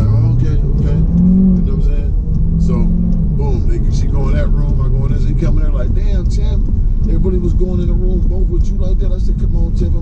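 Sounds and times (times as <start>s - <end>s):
car engine and road noise: 0.0s - 10.0s
man talking: 0.0s - 10.0s.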